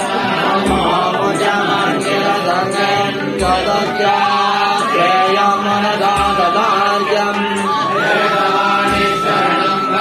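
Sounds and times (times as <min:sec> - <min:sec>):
voices chanting mantras: 0:00.0 - 0:10.0.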